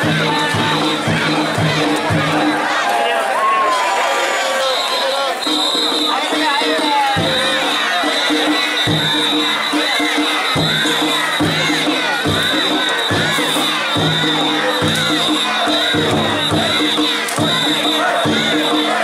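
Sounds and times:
drum beating: 0.0s - 3.4s, 5.3s - 19.0s
crowd shouting and cheering: 0.0s - 19.0s.

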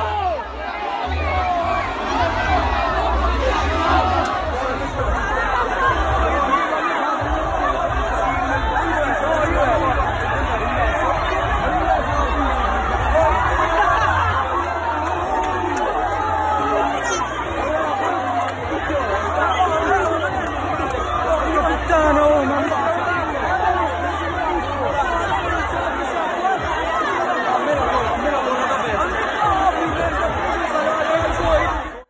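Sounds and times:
low bass music: 0.0s - 6.6s, 7.2s - 27.0s
crowd talking and calling: 0.0s - 32.0s.

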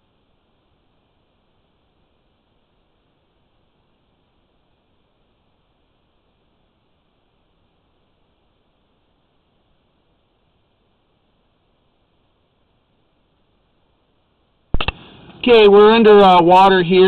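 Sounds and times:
faint steady hiss: 0.0s - 17.0s
sharp clicks: 14.8s - 15.4s.

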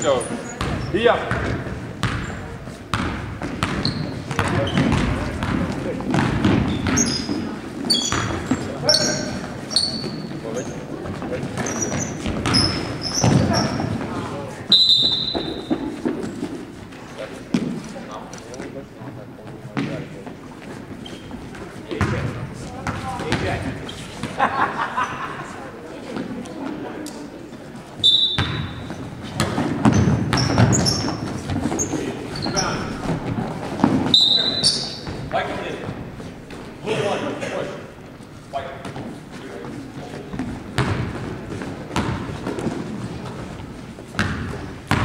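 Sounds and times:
sneaker squeaks: 0.0s - 17.8s, 19.7s - 24.4s, 28.0s - 36.7s, 38.9s - 45.0s
basketball bouncing on wooden floor: 0.6s - 7.4s, 11.6s - 14.0s, 28.4s - 31.8s, 40.3s - 43.4s, 44.1s - 45.0s.

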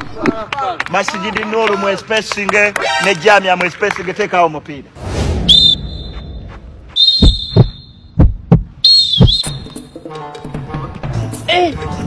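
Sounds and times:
shrill trilling whistle blasts: 5.4s - 8.1s, 8.8s - 9.9s
heavy low heartbeat thumps: 6.5s - 9.6s.

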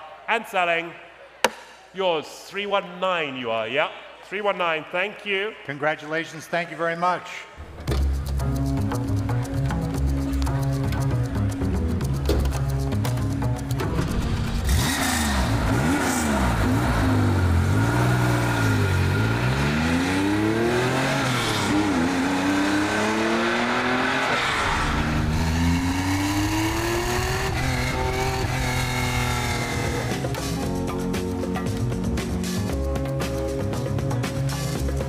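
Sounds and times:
car engine revving: 13.6s - 30.6s.

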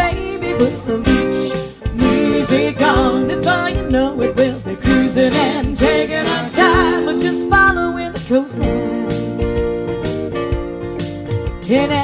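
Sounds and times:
keyboard and electric guitar song: 0.0s - 12.0s.

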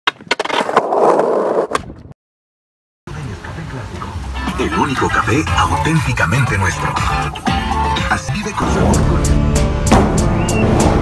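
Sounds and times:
skateboard clack: 0.1s - 1.0s
skateboard wheels rolling: 0.1s - 2.0s.

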